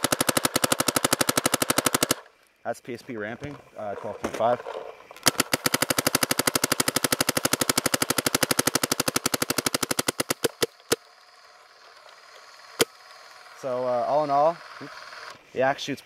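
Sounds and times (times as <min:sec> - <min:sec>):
paintball marker firing: 0:00.0 - 0:02.3, 0:05.1 - 0:11.1, 0:12.4 - 0:13.0.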